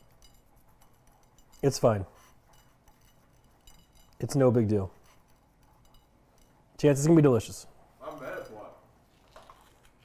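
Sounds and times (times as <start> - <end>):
faint light clinks and rubbing: 0.0 - 10.0.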